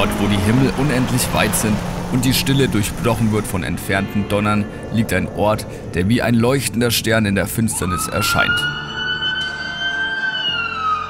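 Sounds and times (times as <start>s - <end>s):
emergency siren wailing: 7.6s - 11.0s.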